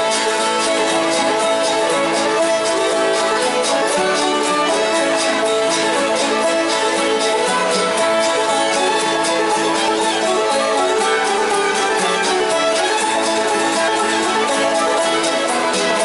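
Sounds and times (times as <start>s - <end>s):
banjo picking: 0.0s - 16.0s
fiddles bowing a melody: 0.0s - 16.0s.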